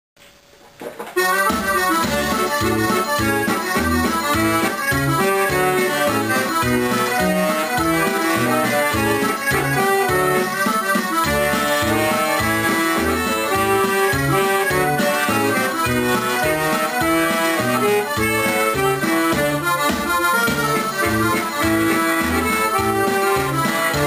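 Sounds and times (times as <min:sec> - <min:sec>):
button accordion folk dance tune: 0:01.1 - 0:24.0.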